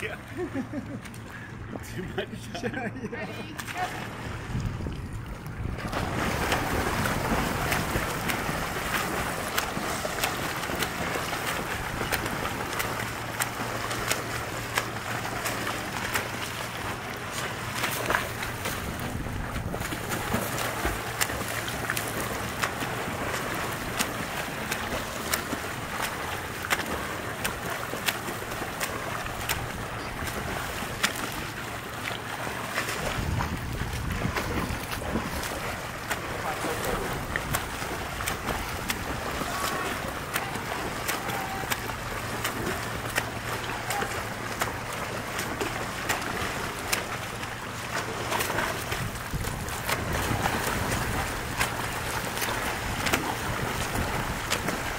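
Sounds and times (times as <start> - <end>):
swimmers churning water: 0.0 - 54.9
sharp water splashes: 3.4 - 54.9.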